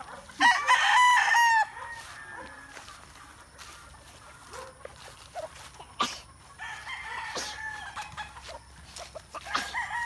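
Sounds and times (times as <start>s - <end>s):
rooster crowing: 0.3s - 3.0s, 6.6s - 8.3s, 9.4s - 10.0s.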